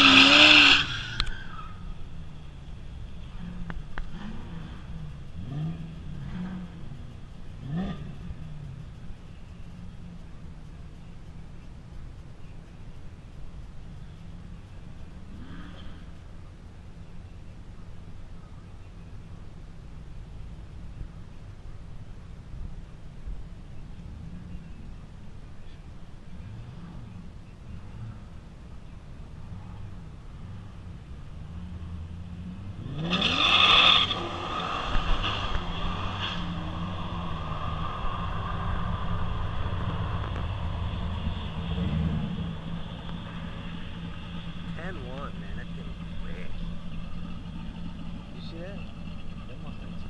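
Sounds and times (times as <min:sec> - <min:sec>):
race car engines revving: 0:00.0 - 0:50.0.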